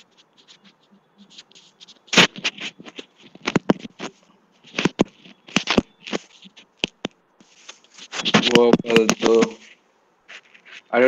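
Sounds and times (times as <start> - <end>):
scratchy clicks and crackles: 0.0 - 11.0.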